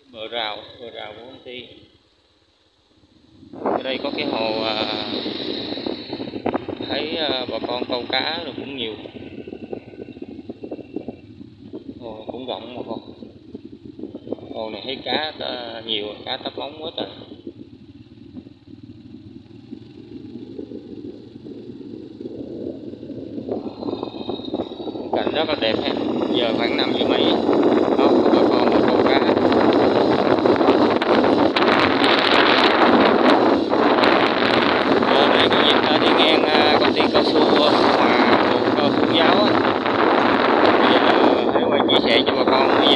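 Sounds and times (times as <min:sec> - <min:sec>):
vehicle and road noise: 0:00.0 - 0:42.9
wind rumbling on microphone: 0:02.6 - 0:42.9.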